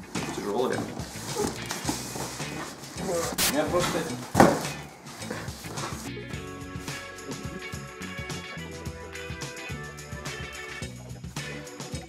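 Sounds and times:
cardboard rustling: 0:00.0 - 0:06.1
background music: 0:00.0 - 0:12.0
thump: 0:04.3 - 0:04.7.

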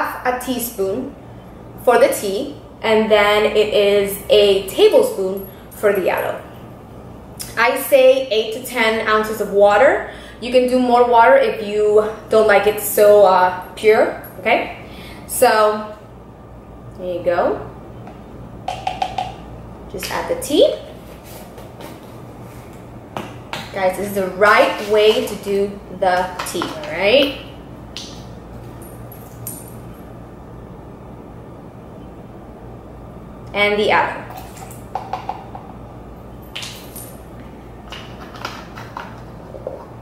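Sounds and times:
steady low hum: 0:00.0 - 0:40.0
plastic scoop tapping on cup: 0:18.7 - 0:19.4.

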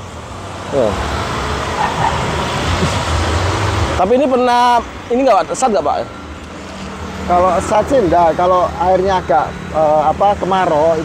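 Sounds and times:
car passing: 0:00.0 - 0:11.0.

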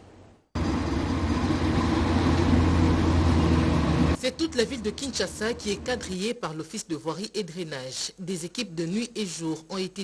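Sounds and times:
diesel engine droning: 0:00.6 - 0:04.2.

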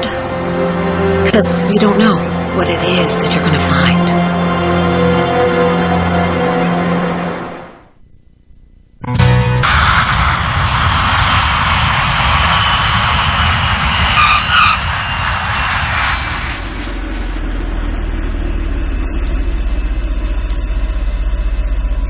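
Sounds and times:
loud jet roar: 0:09.6 - 0:20.0
low car engine rumble: 0:09.8 - 0:22.0.

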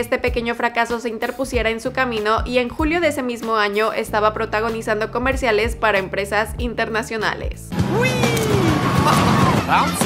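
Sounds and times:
low background music: 0:00.0 - 0:10.0
constant din: 0:07.8 - 0:10.0
falling cry: 0:07.8 - 0:10.0
riders whooping: 0:07.8 - 0:10.0
roller coaster running: 0:08.0 - 0:10.0.

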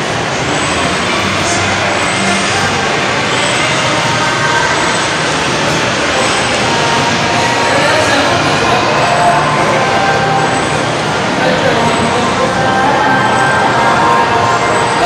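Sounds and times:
busy shopping mall din: 0:00.0 - 0:15.0.

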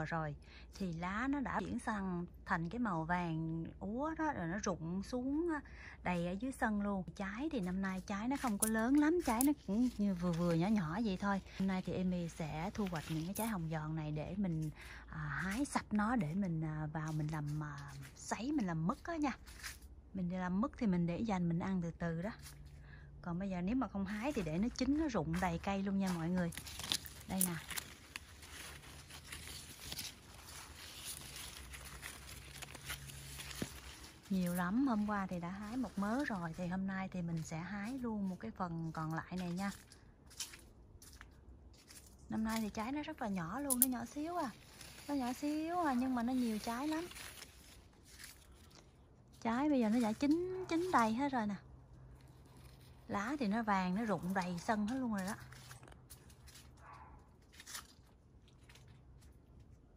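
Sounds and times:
leaves and twigs rustling: 0:06.4 - 0:20.1, 0:23.6 - 0:59.9.

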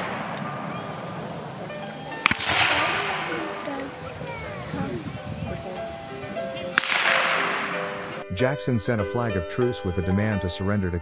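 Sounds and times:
musket shot crack: 0:00.0 - 0:01.4, 0:02.2 - 0:03.9, 0:06.7 - 0:08.2
background music with held notes: 0:00.0 - 0:11.0.

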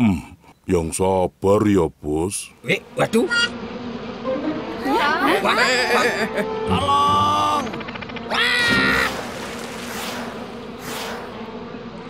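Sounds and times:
cartoon character yelling: 0:04.9 - 0:07.7, 0:08.3 - 0:09.2
steady rushing noise: 0:07.8 - 0:12.0.

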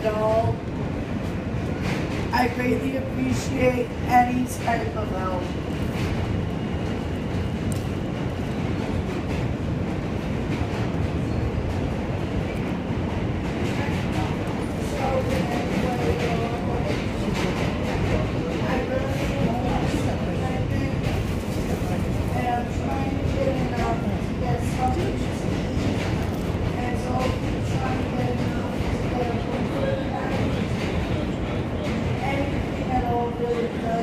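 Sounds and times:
subway car rumbling on track: 0:00.0 - 0:34.0.

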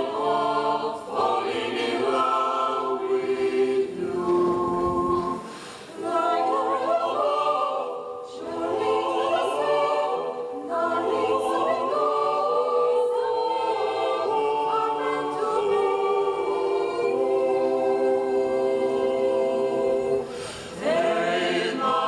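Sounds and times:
mixed choir singing a cappella: 0:00.0 - 0:22.0.

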